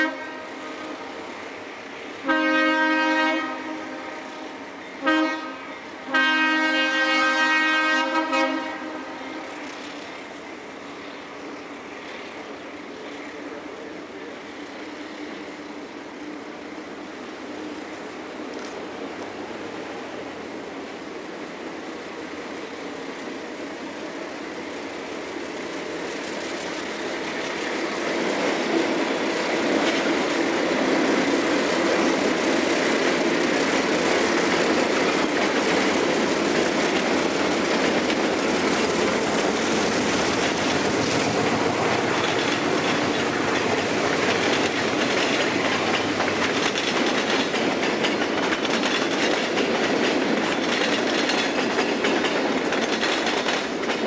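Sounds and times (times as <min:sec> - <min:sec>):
diesel locomotive passing: 0:00.0 - 0:54.0
wheel clatter over rail joints: 0:26.0 - 0:54.0.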